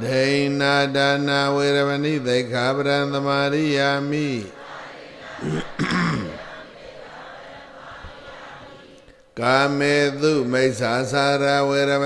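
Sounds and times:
person clearing throat: 5.4 - 6.4.

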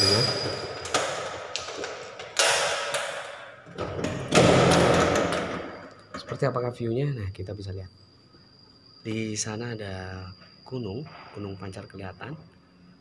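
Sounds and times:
glass door clunks and rattles: 0.4 - 6.5.

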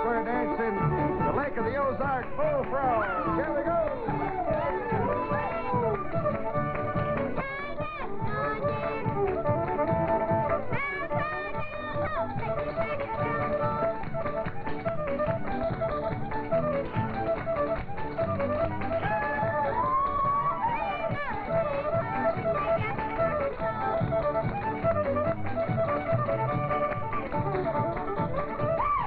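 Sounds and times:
string band playing dance tune: 0.0 - 29.0
feet tapping on stage floor: 0.8 - 29.0.

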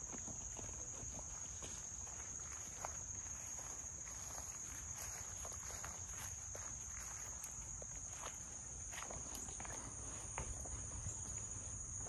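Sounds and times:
footsteps on wooden deck: 0.0 - 12.0
high-pitched insect chorus: 0.0 - 12.0.

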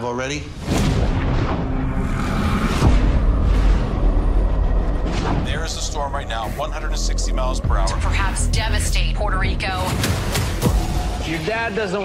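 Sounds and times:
sudden cinematic hit: 0.6 - 11.2
heavy deep rumble: 0.8 - 9.8
music: 1.3 - 12.0.

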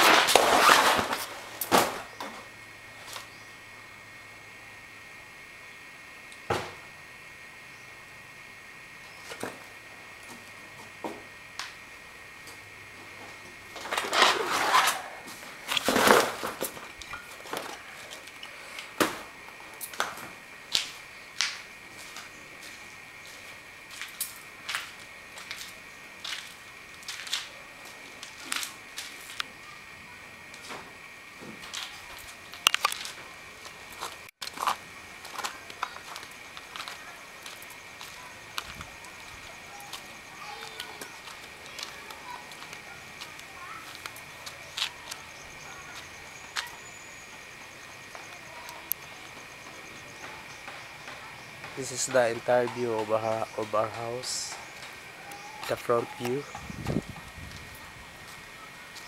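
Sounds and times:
loud grinding crunches: 0.0 - 2.1, 13.7 - 18.8
footsteps crunching over debris: 0.0 - 2.4, 13.1 - 19.0, 19.8 - 29.5, 31.4 - 46.7, 50.5 - 59.0.

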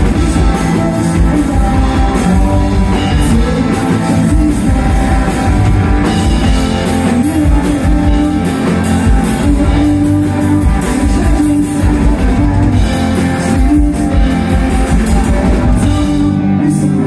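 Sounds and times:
drum beat: 0.0 - 16.0
rock band playing: 0.0 - 17.0.

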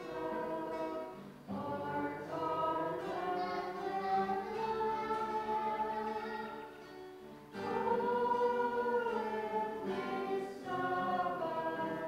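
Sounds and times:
group singing slow hymn: 0.0 - 12.0.

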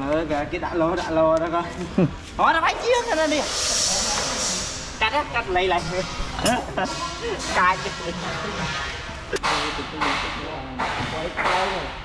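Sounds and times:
high hiss: 2.5 - 9.1.

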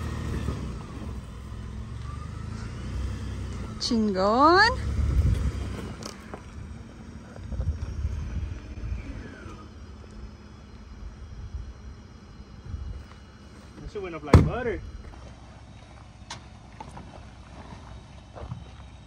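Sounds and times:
pickup engine and tyre rumble: 0.0 - 19.0.

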